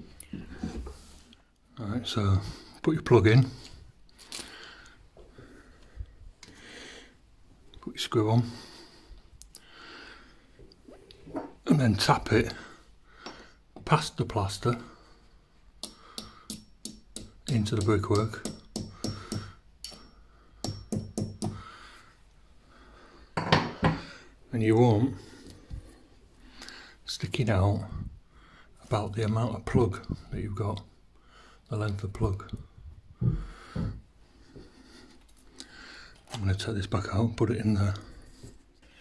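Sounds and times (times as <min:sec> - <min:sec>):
hammer knocking on screw: 0:15.8 - 0:19.5, 0:20.6 - 0:21.6.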